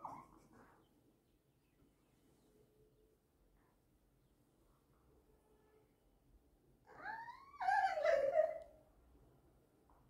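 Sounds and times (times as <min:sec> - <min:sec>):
dog whining: 0:06.9 - 0:08.6.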